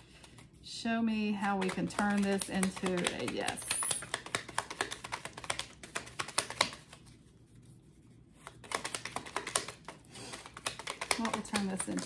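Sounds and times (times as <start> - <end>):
cards being shuffled: 0.0 - 0.6, 1.3 - 12.0.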